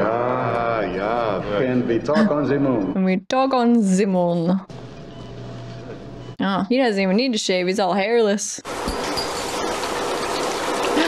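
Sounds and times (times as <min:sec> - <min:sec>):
shower water spraying and splashing: 0:08.7 - 0:11.0.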